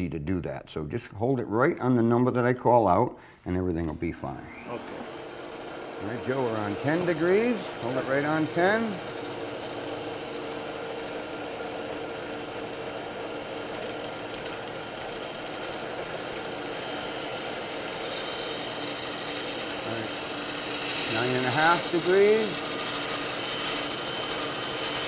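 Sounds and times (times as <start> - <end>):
motor hum: 4.4 - 25.0
bandsaw cutting wood: 4.5 - 25.0.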